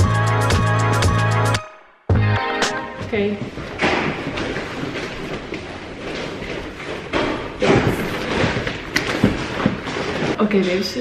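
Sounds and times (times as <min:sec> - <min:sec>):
shopping bag rustling: 0:03.6 - 0:11.0
bag thumps: 0:07.1 - 0:10.4.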